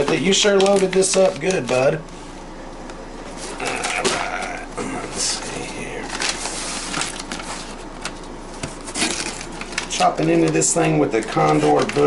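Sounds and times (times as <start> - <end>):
tape crinkling: 0.0 - 2.0, 3.4 - 12.0.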